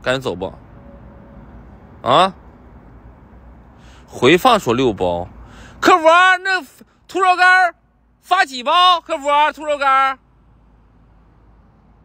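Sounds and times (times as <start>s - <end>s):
faint steady background noise: 0.0s - 12.0s
man's voice on held syllable: 2.0s - 2.4s, 4.2s - 10.2s.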